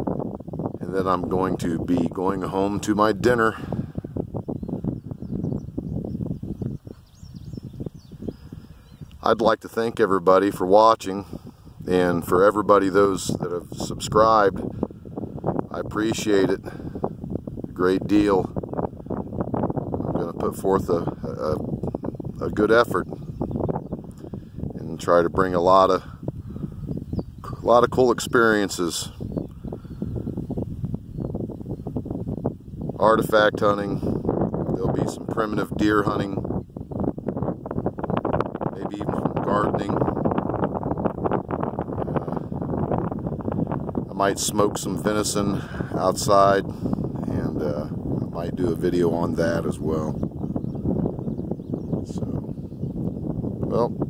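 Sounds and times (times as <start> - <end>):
wind buffeting microphone: 0.0 - 54.0
faint high bird chirps: 4.6 - 9.2.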